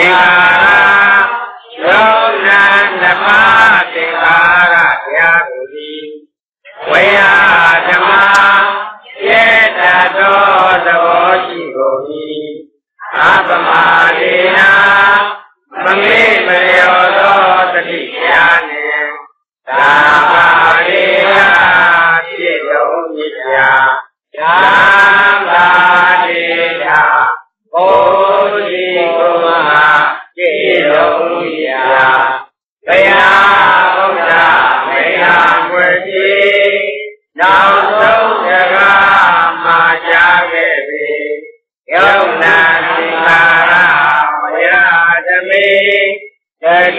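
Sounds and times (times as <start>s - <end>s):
person chanting: 0.0s - 46.9s.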